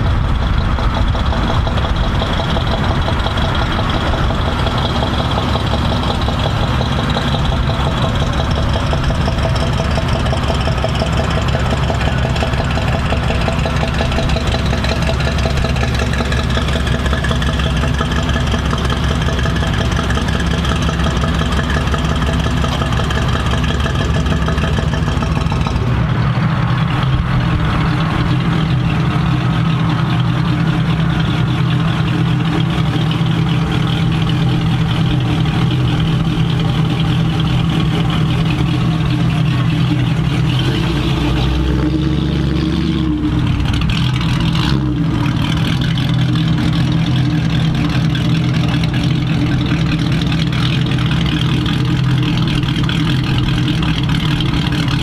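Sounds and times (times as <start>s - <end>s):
lower-pitched engine sound: 0.0s - 55.0s
truck engine running: 0.0s - 55.0s.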